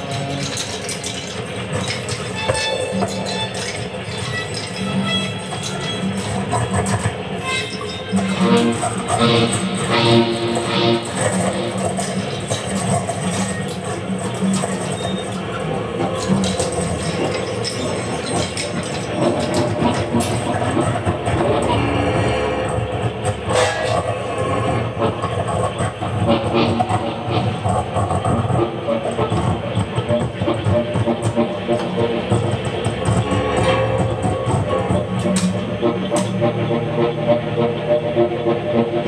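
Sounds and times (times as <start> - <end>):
industrial noise music: 0.0 - 39.0
scattered clicks and knocks: 0.0 - 39.0
strong low hum: 19.3 - 38.3.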